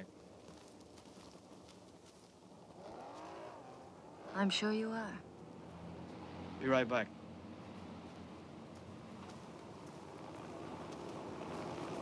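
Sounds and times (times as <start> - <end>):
faint car engine: 0.0 - 12.0.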